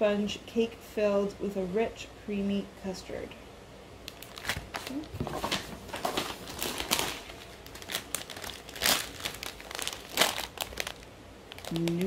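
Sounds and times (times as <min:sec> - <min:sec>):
plastic bag and paper crinkling: 0:04.1 - 0:12.0.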